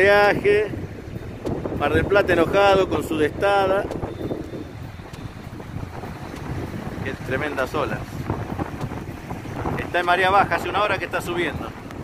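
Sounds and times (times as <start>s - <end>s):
wind buffeting microphone: 0.0s - 12.0s
heavy surf breaking: 5.0s - 12.0s.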